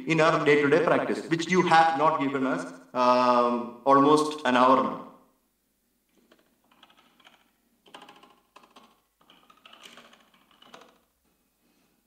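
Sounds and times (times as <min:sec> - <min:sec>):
keyboard typing: 0:06.1 - 0:11.0.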